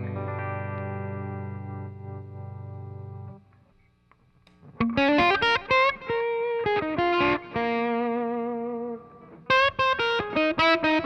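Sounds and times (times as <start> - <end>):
electric guitar chord ringing: 0.0 - 3.5, 4.6 - 11.0
picked guitar notes: 0.0 - 3.7, 4.5 - 11.0.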